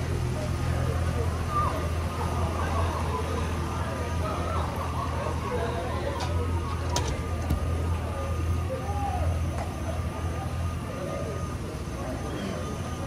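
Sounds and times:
distant talking: 0.0 - 13.0
vehicle engine idling: 0.0 - 13.0.

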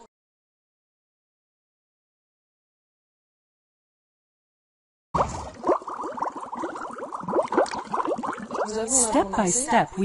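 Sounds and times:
water bubbling and plopping: 5.2 - 9.4.

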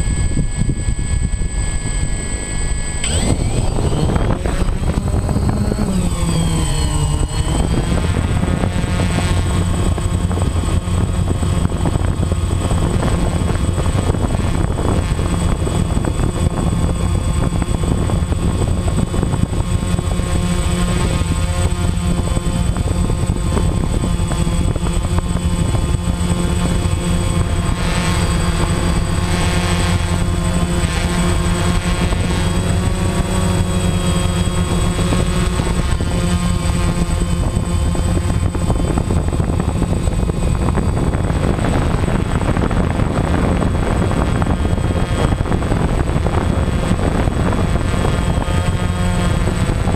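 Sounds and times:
drone propellers buzzing: 0.0 - 49.9.

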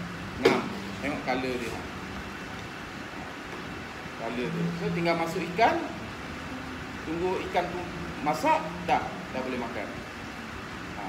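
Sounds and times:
ventilation rushing: 0.0 - 11.0.

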